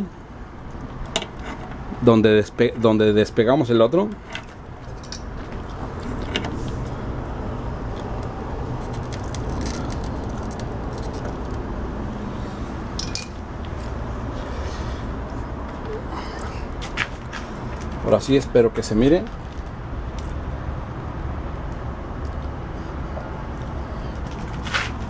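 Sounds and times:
low rushing background noise: 0.0s - 25.0s.

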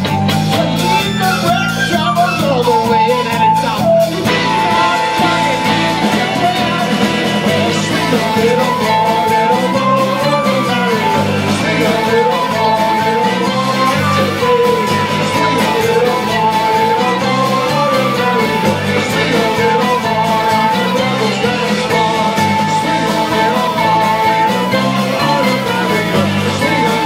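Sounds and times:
folk band playing: 0.0s - 27.0s
person singing lead vocal: 0.0s - 27.0s.

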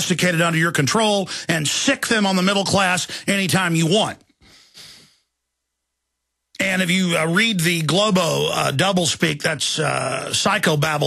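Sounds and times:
man speaking: 0.0s - 5.0s, 6.6s - 11.0s
breath into microphone: 1.3s - 1.5s, 3.1s - 3.3s, 4.4s - 5.3s.

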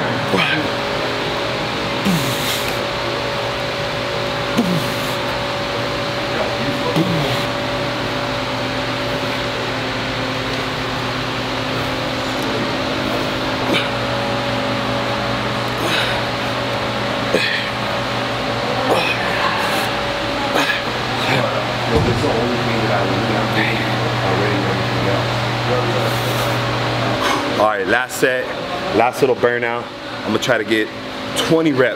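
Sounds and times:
gym room hum with faint tones: 0.0s - 31.9s.

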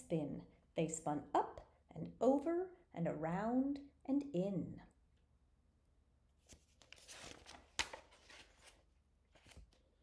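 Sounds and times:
sharp page crackle: 6.4s - 9.8s
paper page rustling: 6.4s - 10.0s.

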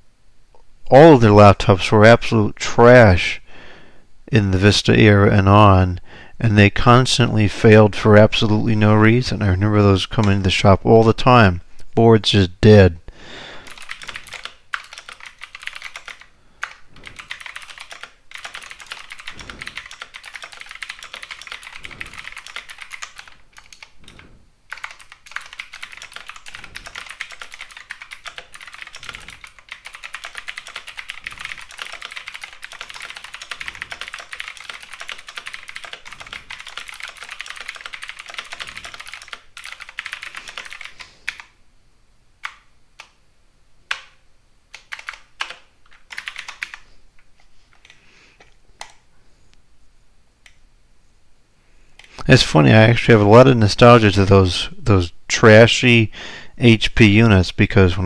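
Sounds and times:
fast keyboard typing: 13.6s - 41.5s, 44.7s - 46.8s.

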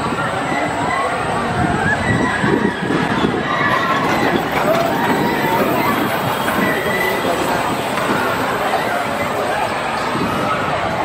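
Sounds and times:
coaster wheels rumbling on track: 0.0s - 11.0s.

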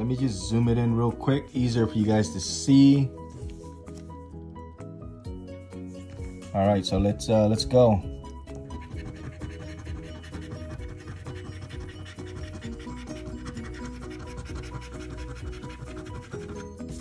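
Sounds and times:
background music: 0.0s - 17.0s
coin scratching lottery ticket: 8.6s - 17.0s.

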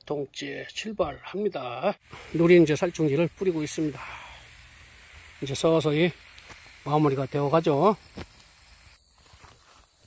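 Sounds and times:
high-pitched insect drone: 2.0s - 10.0s.

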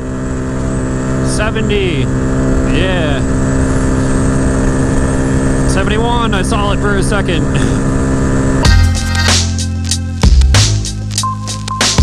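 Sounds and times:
wind and road noise: 0.0s - 8.8s
motorcycle engine at high revs: 0.0s - 11.2s.

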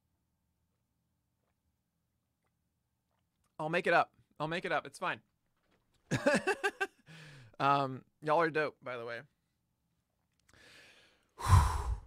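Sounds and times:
man breathing in: 7.0s - 7.6s, 10.5s - 12.0s
man sighing: 7.0s - 7.6s, 10.6s - 12.0s.

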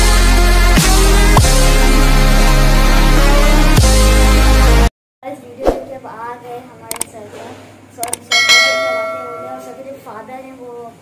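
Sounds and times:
sharp mouse clicks: 6.9s - 7.1s, 8.0s - 8.3s
bell chime ringing: 8.3s - 9.8s.

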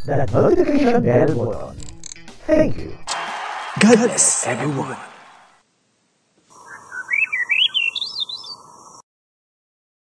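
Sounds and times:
faint steady hiss: 5.6s - 9.0s
warbling whistle-like chirp: 6.6s - 8.6s.

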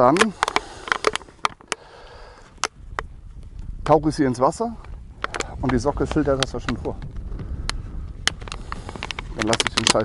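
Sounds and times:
plastic bottle clicking and crackling: 0.1s - 1.9s, 4.8s - 10.0s.

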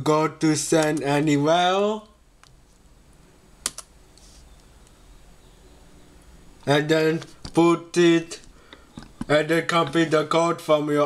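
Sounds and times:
computer mouse double-click: 3.6s - 3.9s.

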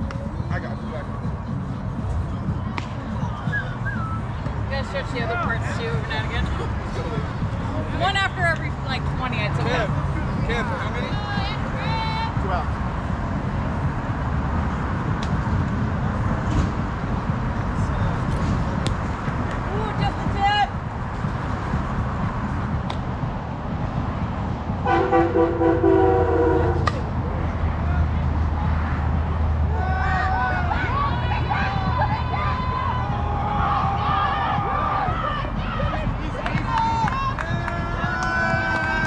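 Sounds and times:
scattered voices: 0.0s - 13.0s, 26.9s - 39.0s
loud horn note: 24.8s - 27.0s.

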